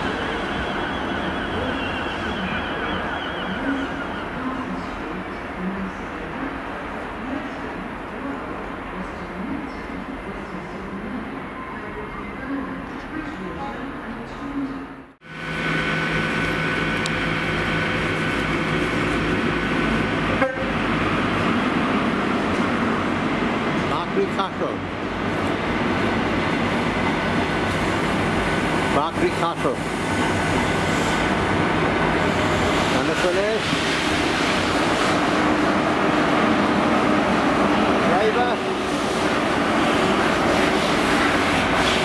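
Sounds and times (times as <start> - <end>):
diesel train engine: 0.0 - 8.4, 15.2 - 42.0
diesel engine drone: 15.2 - 21.5.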